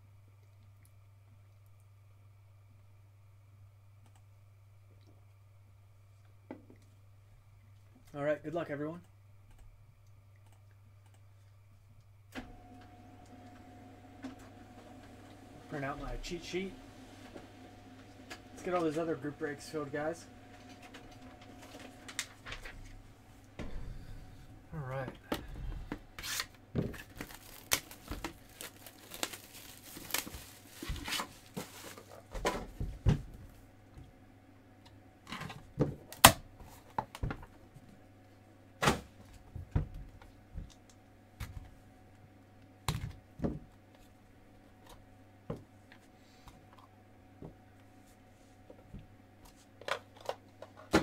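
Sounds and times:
shrink-wrap tearing and crinkling: 26.2s - 32.3s.

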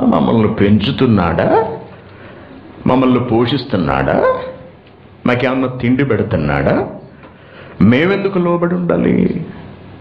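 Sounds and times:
man lecturing: 0.0s - 1.9s, 2.8s - 7.1s, 7.8s - 9.6s.

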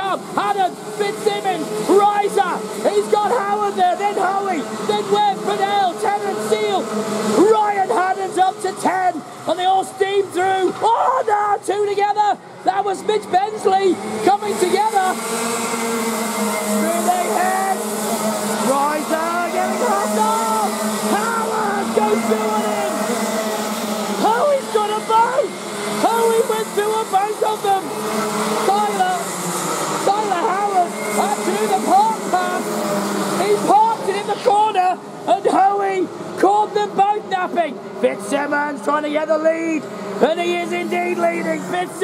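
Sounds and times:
kart engines revving: 0.0s - 42.0s.

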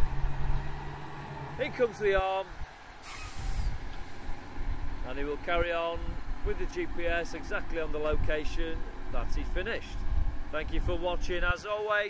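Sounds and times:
low machine rumble: 0.0s - 11.5s
short hiss: 3.0s - 3.8s.

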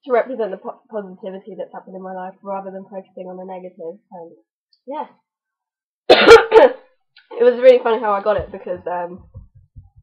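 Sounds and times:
woman coughing: 6.1s - 6.8s.

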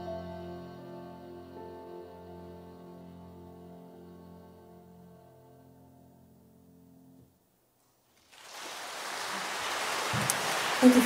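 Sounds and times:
audience applause: 8.2s - 11.0s.

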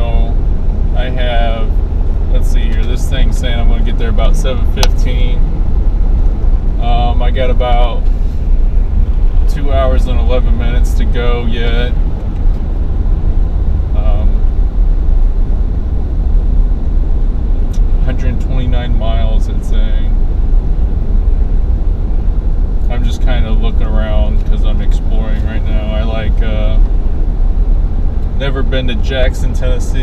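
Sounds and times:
road and engine rumble: 0.0s - 30.0s.

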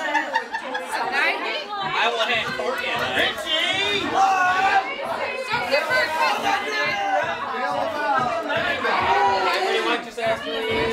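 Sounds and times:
overlapping indistinct chatter: 0.0s - 10.9s.

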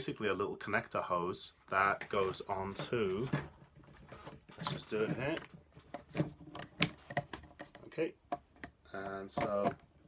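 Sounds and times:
hard plastic clicks and knocks: 3.3s - 10.0s.

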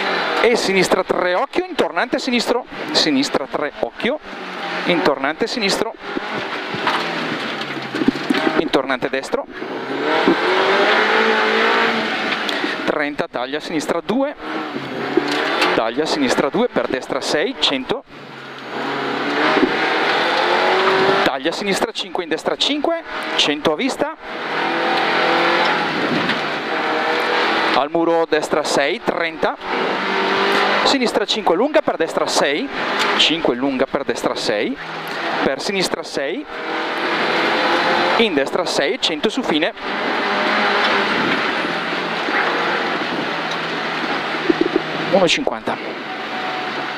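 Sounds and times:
car engine pulling hard: 0.0s - 46.9s.

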